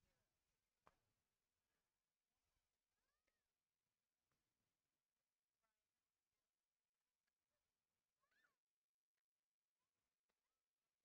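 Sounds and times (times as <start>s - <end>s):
faint squeak: 8.2s - 8.7s.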